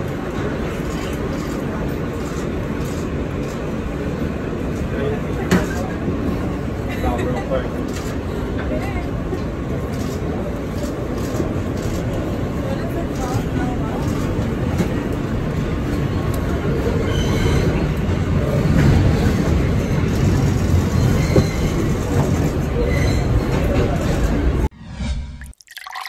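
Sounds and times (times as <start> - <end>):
passenger chatter: 0.0 - 24.7
subway train rumbling: 0.0 - 24.8.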